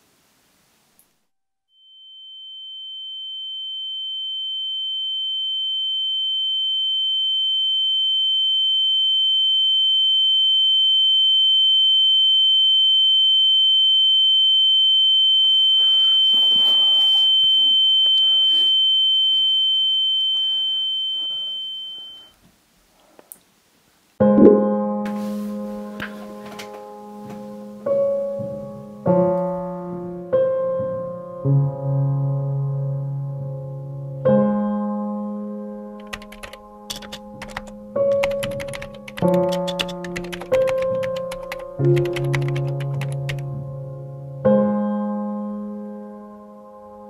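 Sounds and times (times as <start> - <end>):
high-pitched electronic tone: 24.3 - 24.8.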